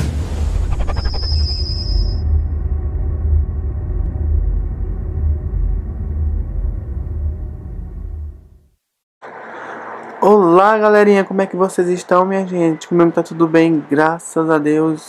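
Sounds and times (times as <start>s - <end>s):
deep low rumble: 0.0s - 8.6s
bright high ringing tone: 0.8s - 2.6s.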